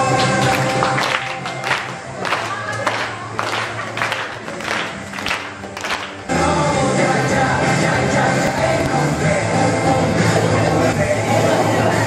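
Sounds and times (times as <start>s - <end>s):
music with singing: 0.0s - 12.0s
clapping: 0.1s - 6.2s.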